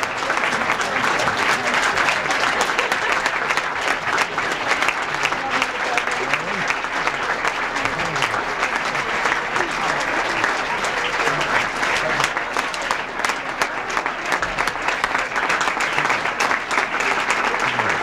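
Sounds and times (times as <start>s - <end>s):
audience applauding: 0.0s - 18.0s.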